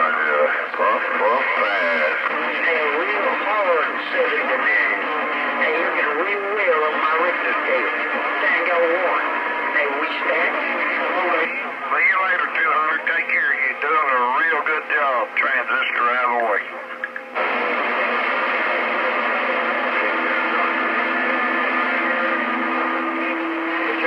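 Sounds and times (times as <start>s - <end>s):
muffled voices over radio: 0.0s - 17.6s, 19.6s - 24.0s.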